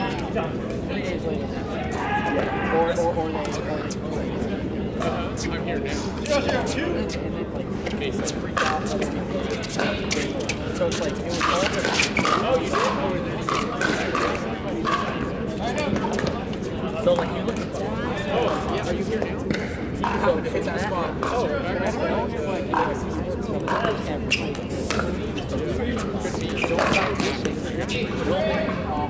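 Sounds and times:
babble of voices: 0.0s - 29.0s.

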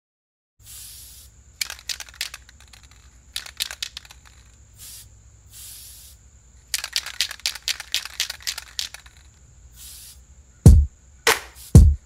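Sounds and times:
spray can rattling: 0.6s - 10.2s, 11.3s - 11.8s
spray hissing: 0.6s - 10.3s, 11.3s - 11.8s.

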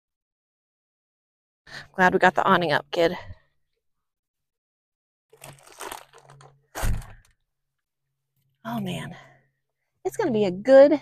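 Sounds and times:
rustling and crinkling: 5.3s - 7.3s
loud thump: 6.8s - 7.2s.

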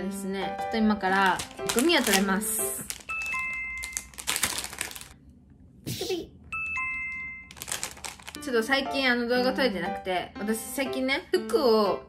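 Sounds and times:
plastic bag crinkling: 1.0s - 5.2s, 7.5s - 8.5s.

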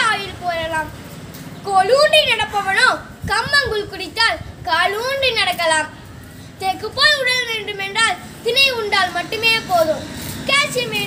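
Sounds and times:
boy speaking: 0.0s - 11.0s.

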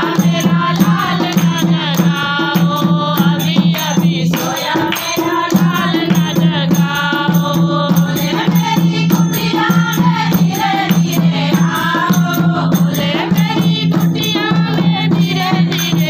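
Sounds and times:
hand-played barrel drum: 0.0s - 16.0s
women singing together: 0.0s - 16.0s
hand-clapping: 3.8s - 7.0s.

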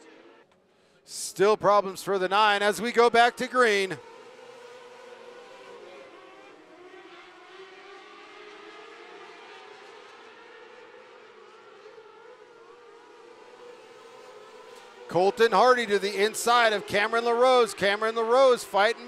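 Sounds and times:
racing car engines droning: 0.0s - 19.0s.

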